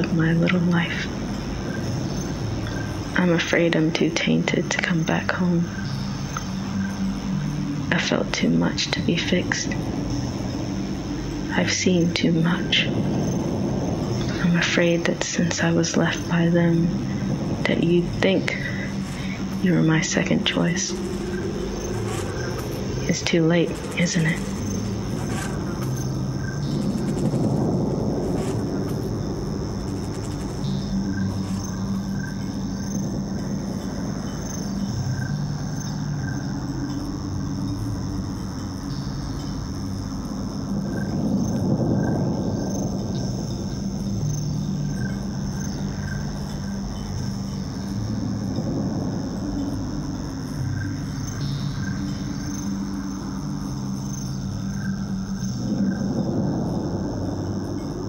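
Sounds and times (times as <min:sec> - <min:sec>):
slow ambient music: 0:00.0 - 0:58.0.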